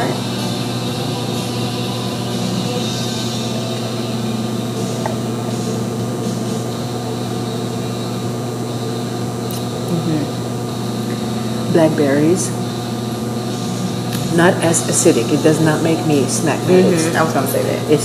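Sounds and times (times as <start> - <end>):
air conditioning hum: 0.0 - 18.0.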